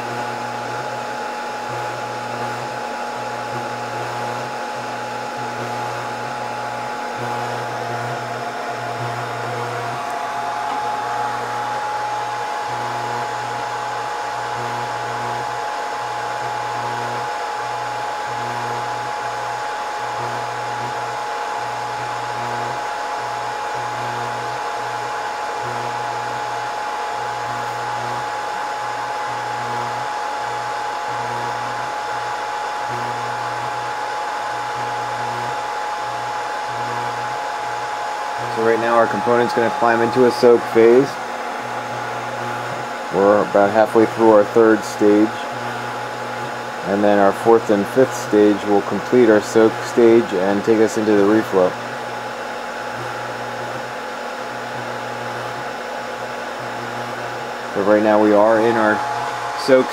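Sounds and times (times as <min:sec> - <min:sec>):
hot-air blowers rushing: 0:00.0 - 0:59.9
low hum: 0:06.6 - 0:14.1, 0:37.5 - 0:43.1, 0:58.4 - 0:59.9.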